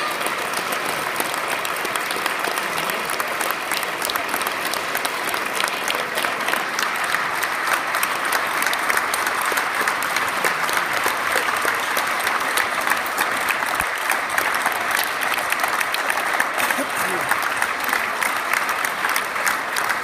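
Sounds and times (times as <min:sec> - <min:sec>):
audience applause: 0:00.0 - 0:20.0.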